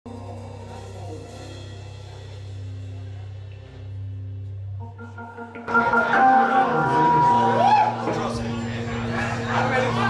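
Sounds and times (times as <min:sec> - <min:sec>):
organ holding low chord: 0:04.7 - 0:07.6.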